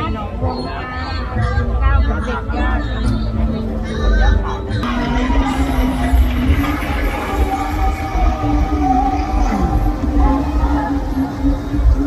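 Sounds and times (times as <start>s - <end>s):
steady low rumble: 4.8s - 12.0s.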